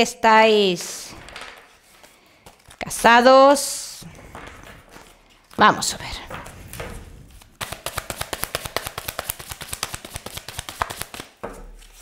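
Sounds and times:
cards being shuffled by hand: 0:00.6 - 0:03.3, 0:04.1 - 0:12.0.

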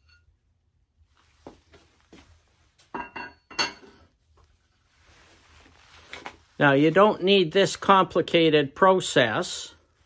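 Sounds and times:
metal tools clinking on workbench: 0:03.0 - 0:03.9.

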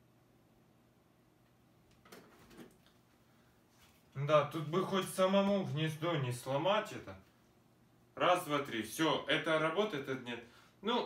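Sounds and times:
cable handling noise: 0:01.9 - 0:03.0.

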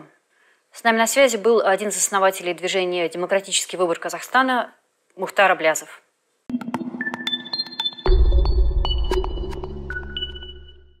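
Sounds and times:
electronic outro music: 0:06.5 - 0:11.0.

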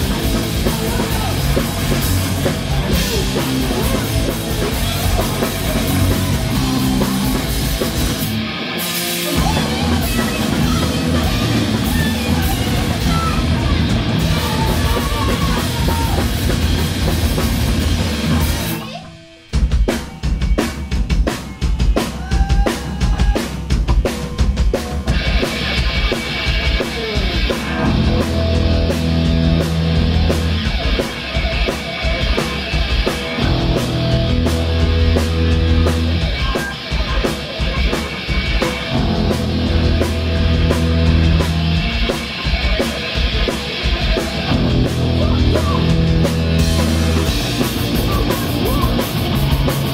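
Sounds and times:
drums playing alone: 0:00.0 - 0:49.9
punk band playing loud: 0:00.0 - 0:49.9.

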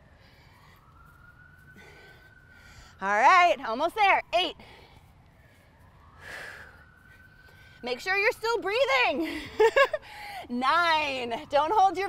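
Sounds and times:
faint distant siren: 0:00.0 - 0:12.0.

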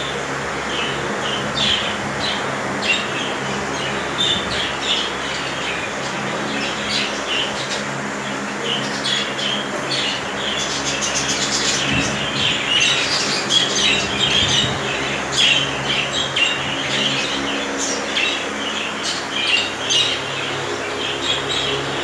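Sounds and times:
budgerigars chattering and chirping: 0:00.0 - 0:22.0
steady low hum: 0:00.0 - 0:22.0.

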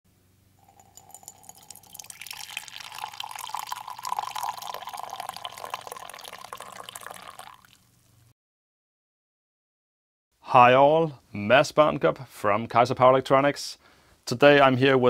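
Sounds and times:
liquid pouring into a ceramic mug: 0:00.6 - 0:08.0.

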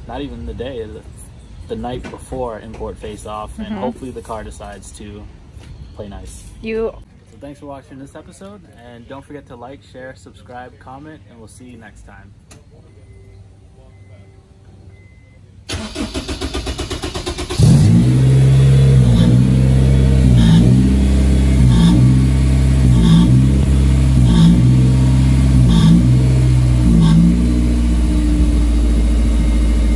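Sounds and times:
engine starter cranking: 0:15.7 - 0:18.2
car engine running loudly: 0:17.6 - 0:29.9.

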